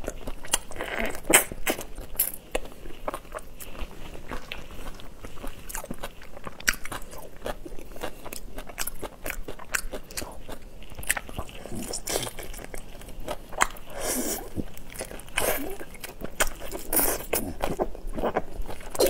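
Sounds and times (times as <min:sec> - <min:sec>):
crunching shrimp shells while chewing: 0:00.0 - 0:19.0.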